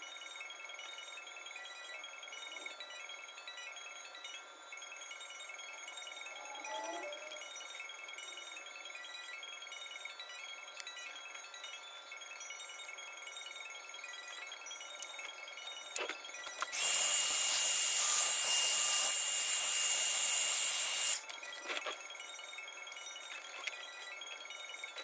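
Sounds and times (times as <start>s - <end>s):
hair dryer blowing: 16.7s - 21.2s.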